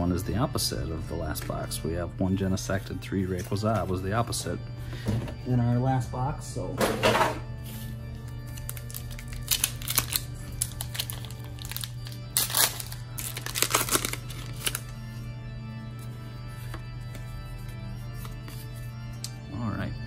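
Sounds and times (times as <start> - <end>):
background music: 0.0 - 20.0
foil pack crinkling and tearing: 8.5 - 14.9.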